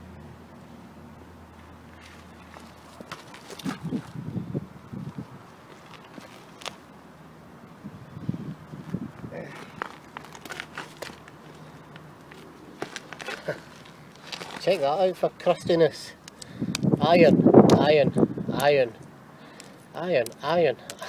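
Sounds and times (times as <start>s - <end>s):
rope rustling and scuffing: 1.6s - 7.0s, 8.8s - 15.3s
boots shifting on concrete: 2.0s - 4.2s, 8.8s - 15.0s.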